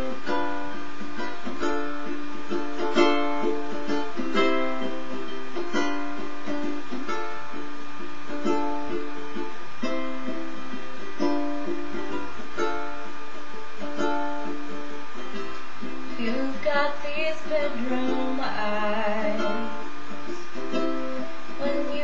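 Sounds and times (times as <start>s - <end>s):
ukulele strummed chords: 0.0s - 22.0s.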